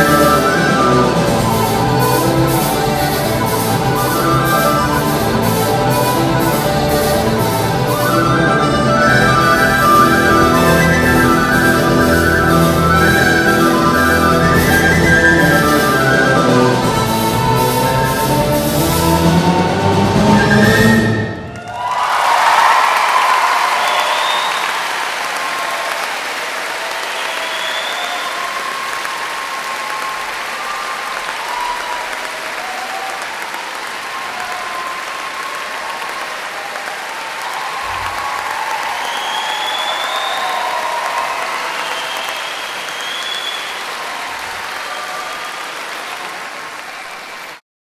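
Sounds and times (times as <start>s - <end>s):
audience applause: 0.0s - 47.6s
cheering: 20.3s - 47.6s.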